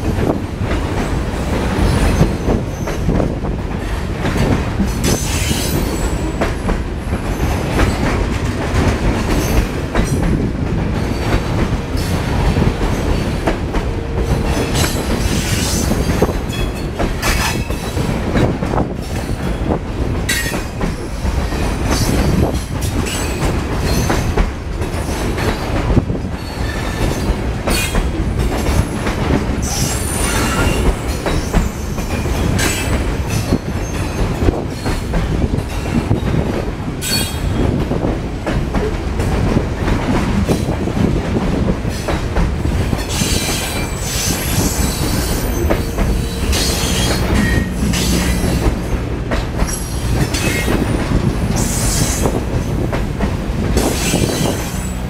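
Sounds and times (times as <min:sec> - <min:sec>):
train wheels rumbling on rail: 0:00.0 - 0:55.0
wheels clacking over rail joints: 0:00.0 - 0:55.0.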